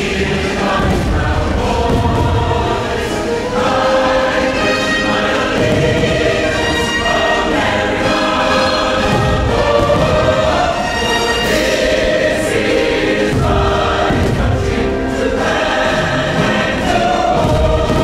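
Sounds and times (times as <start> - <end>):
choir with orchestral music: 0.0 - 18.0
fireworks booming: 0.7 - 3.0, 5.5 - 6.8, 9.0 - 10.9.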